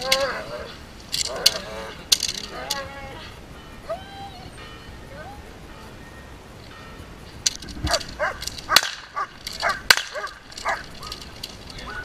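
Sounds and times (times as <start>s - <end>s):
sharp cracks: 6.6s - 12.0s
dog barking: 7.9s - 10.9s.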